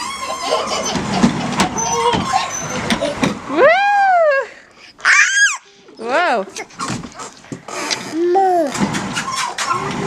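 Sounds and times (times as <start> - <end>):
toddler squealing: 1.8 - 2.9, 5.0 - 5.7.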